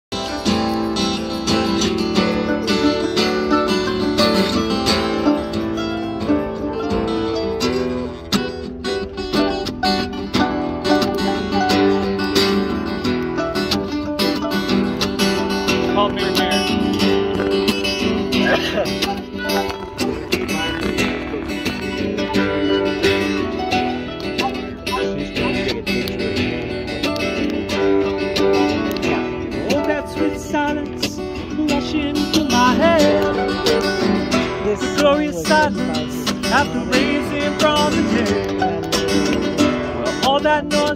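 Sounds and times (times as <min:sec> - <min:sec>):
acoustic guitar strumming: 0:00.1 - 0:40.9
mandolin: 0:00.1 - 0:40.9.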